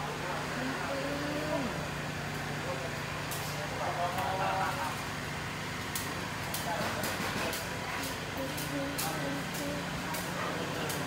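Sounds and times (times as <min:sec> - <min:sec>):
indistinct voices: 0:00.0 - 0:01.9, 0:06.6 - 0:11.0
steady low hum: 0:00.0 - 0:06.7.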